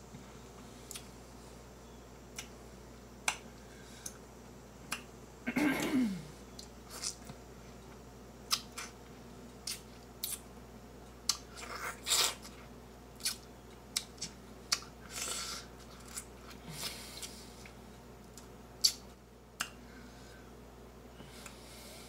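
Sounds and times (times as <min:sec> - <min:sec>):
wet chewing and sucking: 0:09.6 - 0:10.4, 0:11.3 - 0:19.1.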